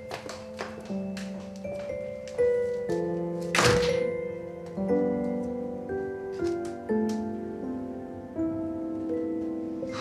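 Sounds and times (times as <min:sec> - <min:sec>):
background music of held notes: 0:00.0 - 0:10.0
door shutting with thunk: 0:03.6 - 0:04.1.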